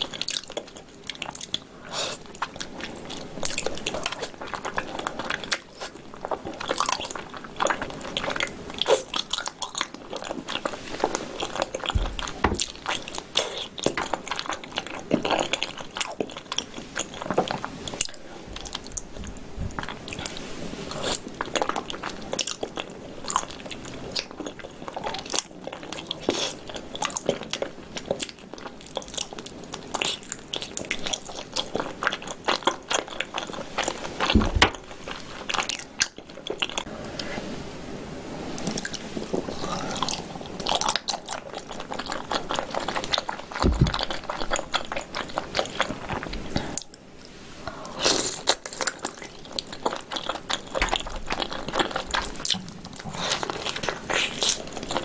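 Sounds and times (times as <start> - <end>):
person chewing: 0.0 - 37.3, 38.6 - 55.0.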